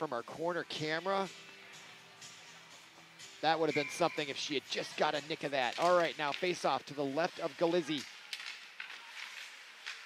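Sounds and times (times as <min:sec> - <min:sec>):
hockey sticks and puck clacking: 0:05.0 - 0:10.0.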